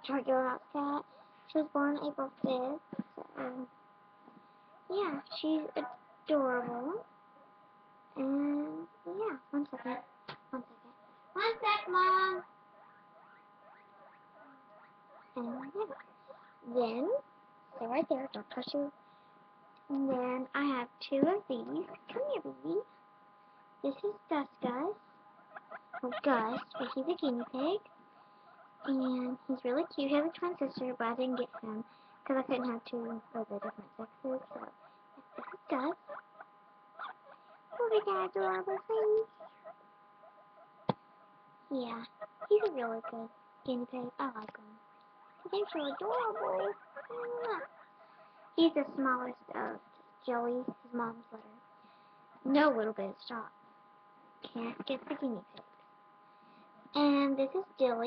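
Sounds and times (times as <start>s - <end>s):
low steady hum: 0.0s - 58.0s
small animal squeaking: 9.6s - 18.8s, 21.6s - 22.5s, 23.9s - 41.0s, 41.9s - 43.4s, 44.0s - 49.8s.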